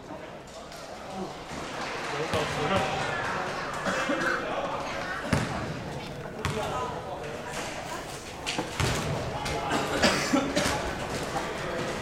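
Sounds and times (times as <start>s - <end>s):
basketball bouncing on gym floor: 5.3s - 5.8s, 6.4s - 6.7s.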